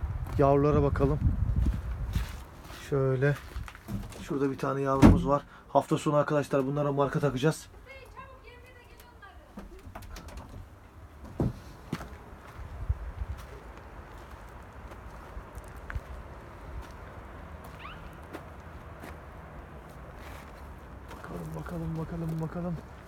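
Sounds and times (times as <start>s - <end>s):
wind rumbling on microphone: 0.0s - 2.8s, 10.1s - 17.9s.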